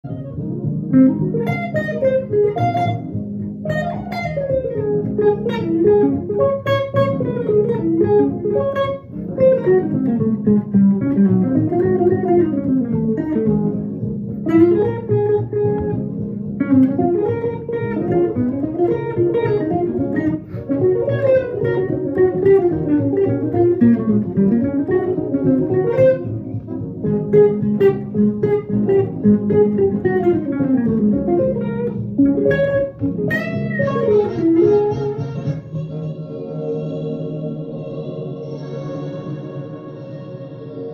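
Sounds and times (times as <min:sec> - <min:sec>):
electric guitar jazz solo: 0:00.0 - 0:36.2.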